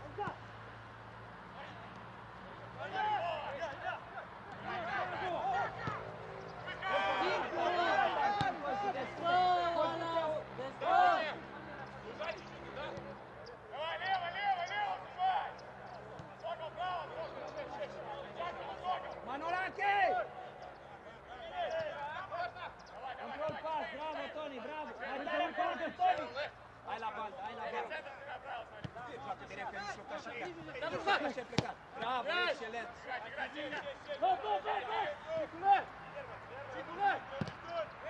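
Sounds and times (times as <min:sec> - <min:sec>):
people shouting on a pitch: 0:02.7 - 0:13.0, 0:16.4 - 0:20.5, 0:33.3 - 0:37.9.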